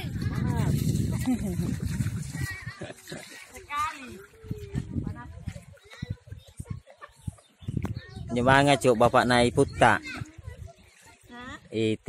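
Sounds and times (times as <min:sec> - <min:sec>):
person laughing: 0:01.2 - 0:01.7.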